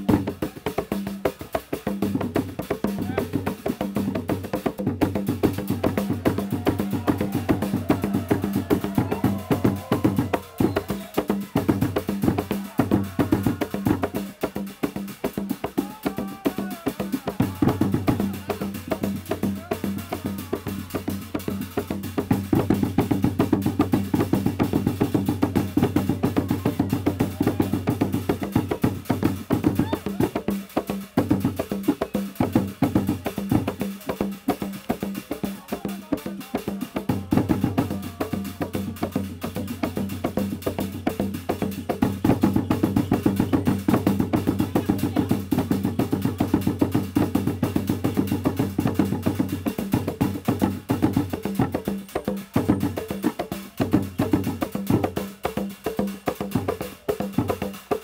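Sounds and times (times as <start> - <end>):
hand drums playing fast rhythm: 0.0 - 58.0.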